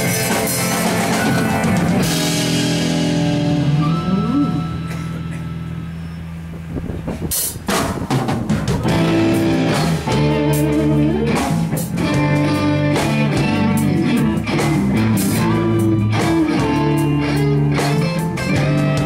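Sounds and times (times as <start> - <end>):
live rock band playing: 0.0 - 19.0
drum hit: 7.2 - 10.6.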